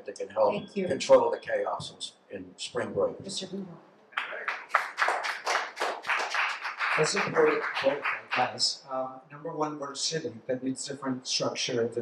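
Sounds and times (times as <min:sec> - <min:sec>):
person speaking: 0:00.0 - 0:04.7, 0:07.0 - 0:12.0
audience clapping: 0:04.2 - 0:08.8.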